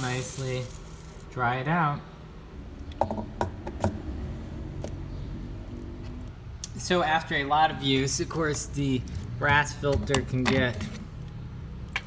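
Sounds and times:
hard objects clicking and knocking: 0:02.9 - 0:04.0, 0:09.0 - 0:11.1.

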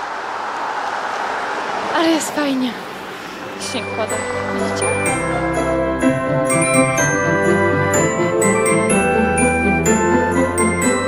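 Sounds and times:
car tyres hissing on snow: 0:00.0 - 0:03.6.

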